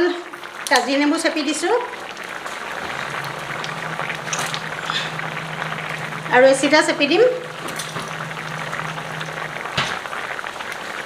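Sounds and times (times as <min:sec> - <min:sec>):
curry bubbling in a pot: 0:00.0 - 0:11.0
low steady hum: 0:01.8 - 0:10.9.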